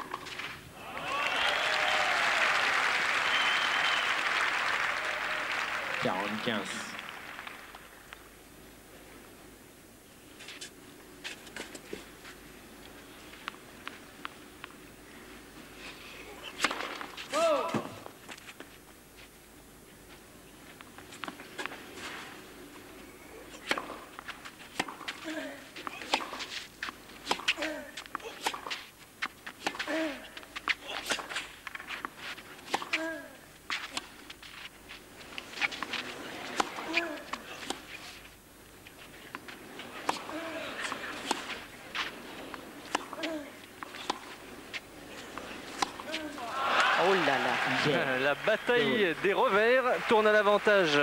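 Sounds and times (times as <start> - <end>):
tennis ball struck with racquets: 16.5 - 18.0, 23.5 - 33.1, 35.6 - 38.0, 39.3 - 46.5.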